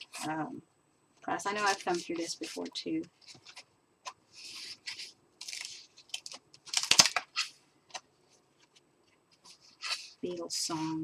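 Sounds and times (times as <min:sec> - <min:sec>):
paper pages rustling: 0:01.4 - 0:11.0.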